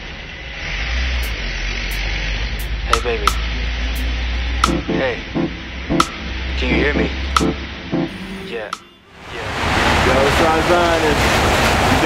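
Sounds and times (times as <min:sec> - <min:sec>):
rushing noise with deep rumble: 0:09.3 - 0:12.0.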